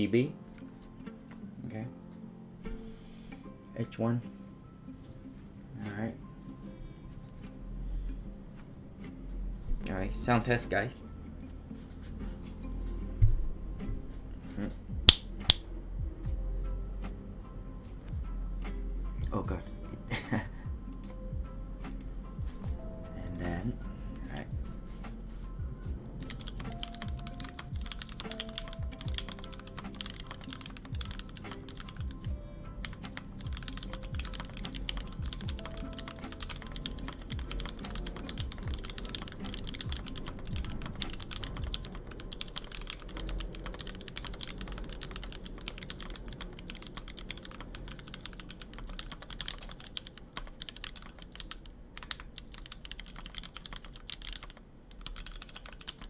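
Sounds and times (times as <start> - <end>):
mechanical keyboard typing: 26.3 - 32.2, 32.8 - 56.0.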